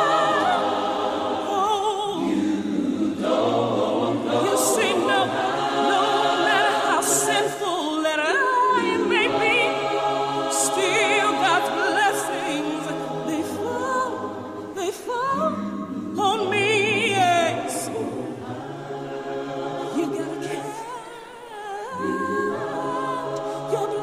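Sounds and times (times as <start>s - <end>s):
choir singing a cappella: 0.0s - 24.0s.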